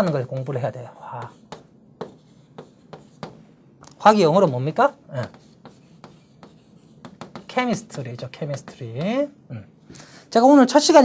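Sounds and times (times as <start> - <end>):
chalk tapping and scratching: 0.0 - 3.5, 4.2 - 9.3.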